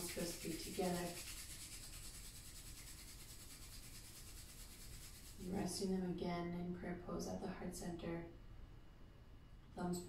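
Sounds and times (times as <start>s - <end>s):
palms rubbing together: 0.0s - 5.6s.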